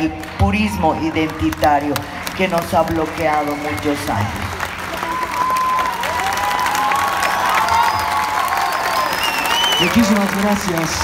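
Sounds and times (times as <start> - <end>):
people cheering and calling out: 0.0 - 10.9
audience applauding: 0.0 - 11.0.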